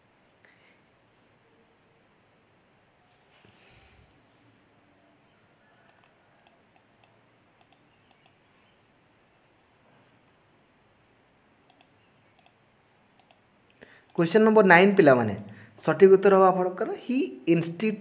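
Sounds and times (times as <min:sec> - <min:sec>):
faint clicks: 0:05.8 - 0:08.5, 0:11.6 - 0:12.6, 0:13.2 - 0:14.2.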